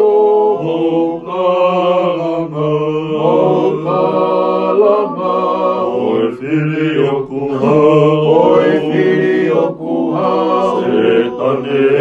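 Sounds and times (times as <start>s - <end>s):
men singing together: 0.0s - 12.0s.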